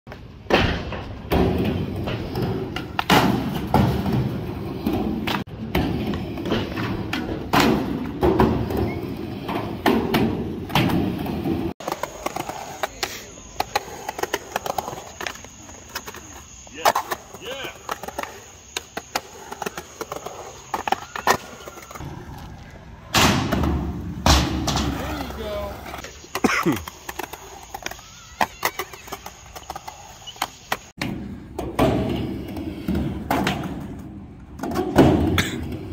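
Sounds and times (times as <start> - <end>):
skateboard clacks and thumps: 0.1 - 35.9
skateboard wheels rolling: 0.1 - 35.9.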